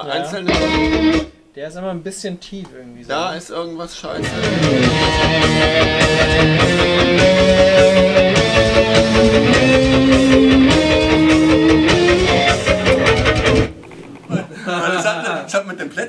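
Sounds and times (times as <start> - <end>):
heavy metal distorted electric guitar: 0.5 - 1.3, 4.2 - 13.8.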